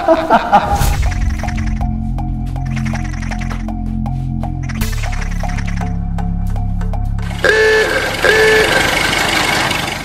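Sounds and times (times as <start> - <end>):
background music with quick beat: 0.8 - 8.6
street traffic noise: 6.8 - 10.0
vehicle horn honking: 7.3 - 9.1.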